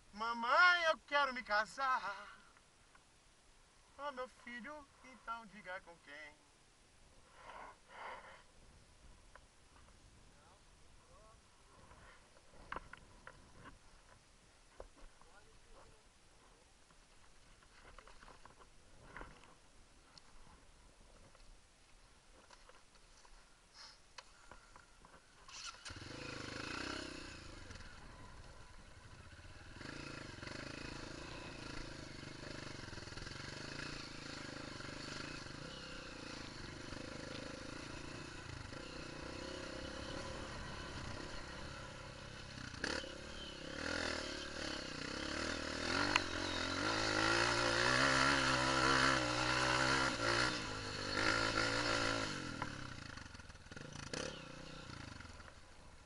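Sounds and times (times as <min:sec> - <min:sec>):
dirt bike engine running: 0:25.5 - 0:55.7.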